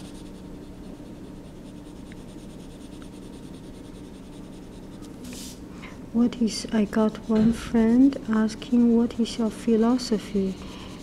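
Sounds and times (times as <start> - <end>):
marker scribbling on paper: 0.0 - 5.6, 6.2 - 11.0.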